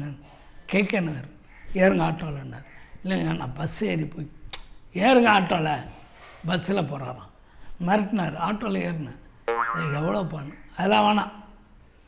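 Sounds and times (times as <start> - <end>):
man talking: 0.0 - 4.3, 6.5 - 11.4.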